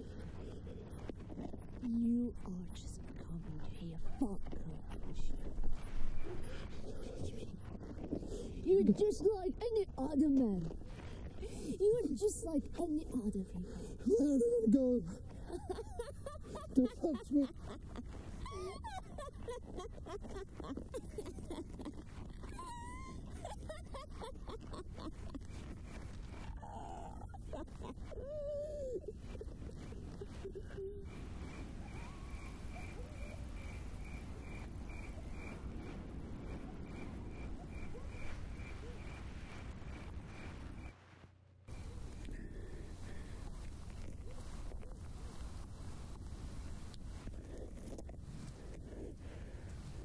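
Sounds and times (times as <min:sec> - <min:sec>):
woman laughing and growling: 0:14.0 - 0:39.2
steady low rumble: 0:23.7 - 0:44.3.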